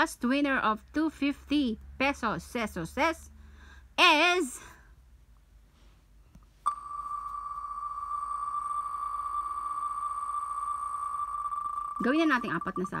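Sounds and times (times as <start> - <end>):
high electronic tone: 6.7 - 13.0.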